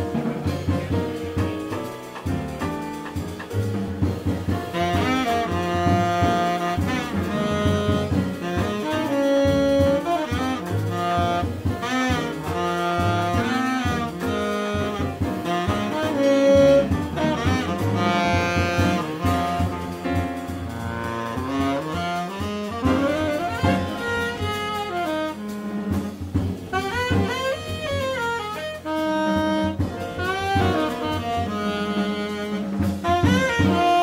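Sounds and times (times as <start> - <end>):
double bass: 0.0 - 34.0
drums: 0.0 - 34.0
piano: 0.0 - 34.0
tenor saxophone playing jazz: 0.0 - 34.0.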